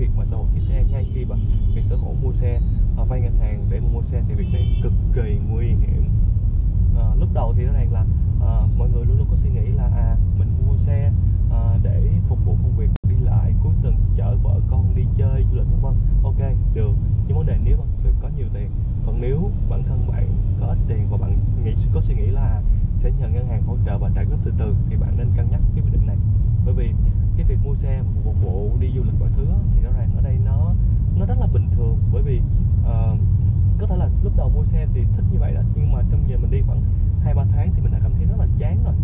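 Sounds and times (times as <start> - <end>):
man talking: 0.0 - 6.2, 6.9 - 39.0
car road and engine rumble: 0.0 - 39.0.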